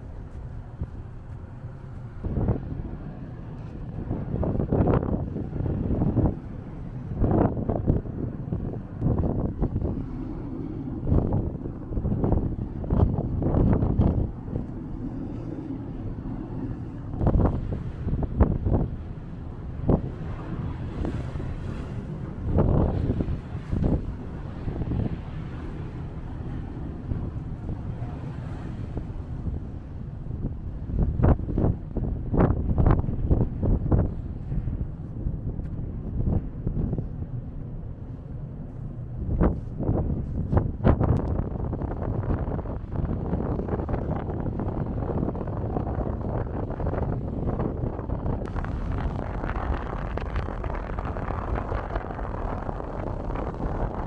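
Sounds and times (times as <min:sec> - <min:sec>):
low rumble of ship: 0:00.0 - 0:54.0
wind buffeting microphone: 0:00.0 - 0:54.0.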